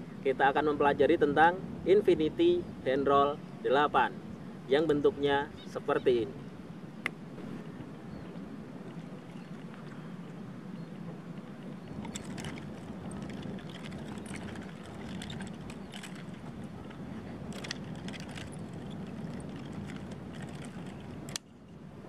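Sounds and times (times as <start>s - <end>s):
steady low rumble: 6.4s - 22.0s.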